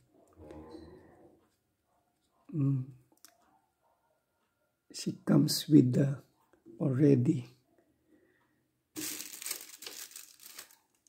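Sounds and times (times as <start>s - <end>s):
crinkling rustling handling noise: 9.0s - 11.0s.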